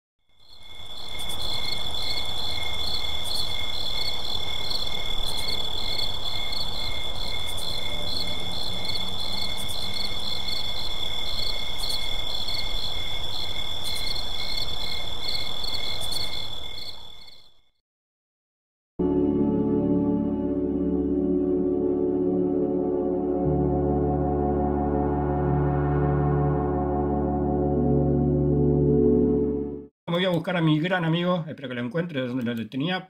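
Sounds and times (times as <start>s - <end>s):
crickets chirping: 0.3s - 17.7s.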